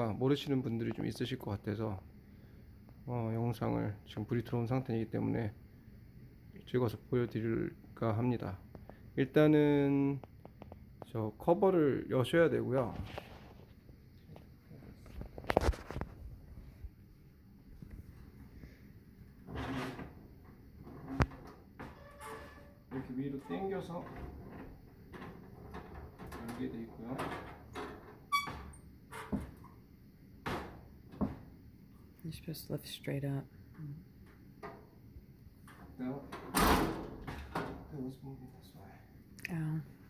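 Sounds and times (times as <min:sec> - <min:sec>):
metal frame scraping clatter: 0:19.5 - 0:20.1.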